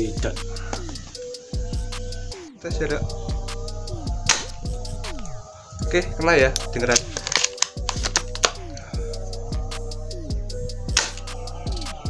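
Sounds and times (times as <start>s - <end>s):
background electronic music: 0.0s - 12.0s.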